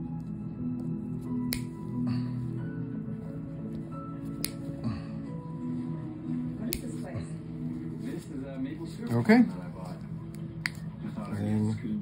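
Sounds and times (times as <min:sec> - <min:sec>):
background music with held tones: 0:00.0 - 0:12.0
nail nippers snipping: 0:01.4 - 0:01.8, 0:04.3 - 0:04.7, 0:06.7 - 0:07.0.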